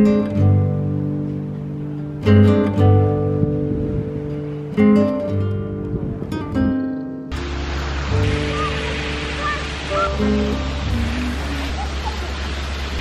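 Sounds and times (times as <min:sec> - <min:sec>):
acoustic guitar music: 0:00.0 - 0:13.0
rushing noise with low hum: 0:07.3 - 0:13.0.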